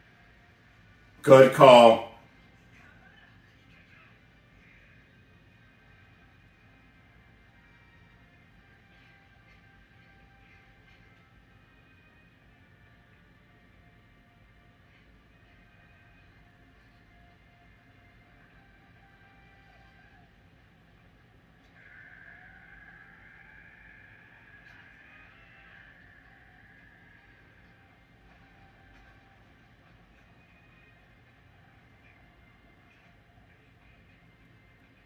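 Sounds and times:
faint room hum: 0.0 - 35.0.

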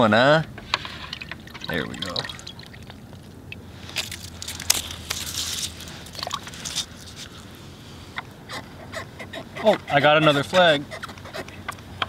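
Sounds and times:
crunching and scraping on snow: 3.8 - 7.5.

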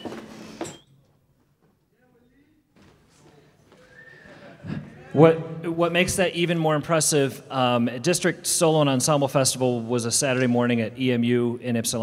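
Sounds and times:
person speaking: 1.9 - 12.0.

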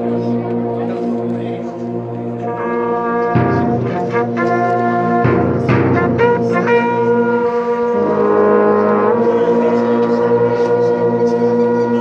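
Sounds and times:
brass band sustained chord: 0.0 - 12.0.

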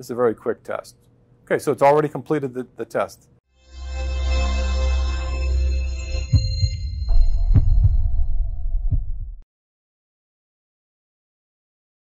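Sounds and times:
steady held tone: 3.6 - 9.4
deep low thumps: 6.2 - 9.4.

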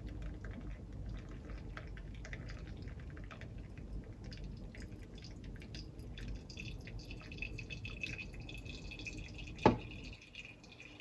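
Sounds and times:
water trickling and dripping: 0.0 - 11.0
kettle set down on counter: 9.6 - 9.8.

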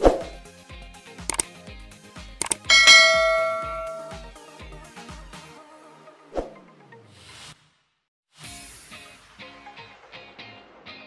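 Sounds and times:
quick double clicks: 2.4 - 2.7
bell ding: 2.5 - 4.3.

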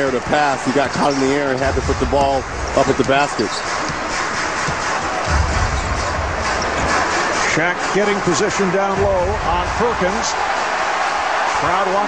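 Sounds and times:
arena crowd noise: 0.0 - 12.0
music over loudspeakers: 0.2 - 12.0.

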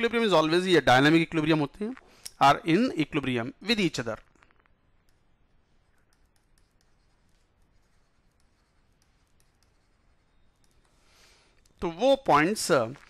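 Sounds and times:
man speaking: 0.0 - 4.2, 11.8 - 13.0
breath: 2.0 - 2.4, 10.9 - 11.6
stylus scratching on tablet: 4.9 - 13.0.

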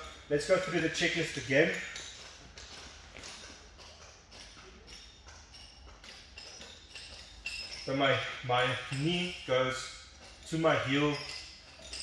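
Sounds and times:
bodies tapping on training mats: 0.0 - 12.0.

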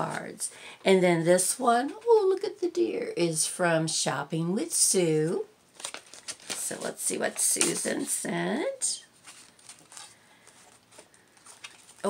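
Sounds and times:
paper rustling: 5.8 - 8.1, 9.1 - 12.0.

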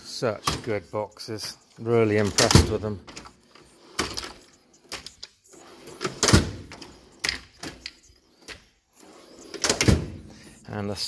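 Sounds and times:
tool chest drawers sliding: 0.0 - 10.4.

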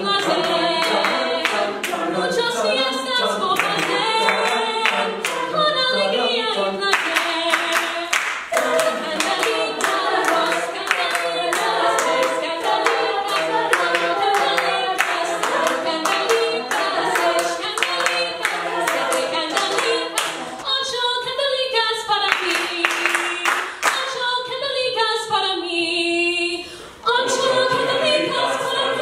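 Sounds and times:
backing voices singing: 0.0 - 21.5, 27.0 - 29.0
hands clapping a steady beat: 0.2 - 2.1, 3.5 - 5.5, 6.9 - 20.6, 22.2 - 24.2.

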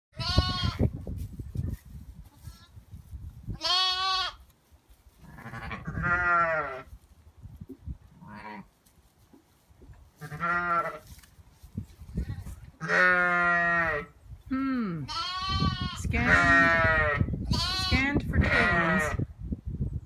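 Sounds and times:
sheep and lambs bleating: 0.1 - 0.9, 2.3 - 2.8, 3.5 - 4.5, 5.2 - 6.9, 8.2 - 8.7, 10.2 - 11.1, 12.2 - 14.1, 15.0 - 19.2.

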